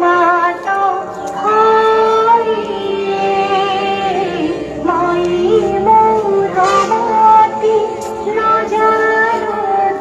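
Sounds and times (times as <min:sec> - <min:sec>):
high voices singing: 0:00.0 - 0:10.0
instrumental accompaniment: 0:00.0 - 0:10.0.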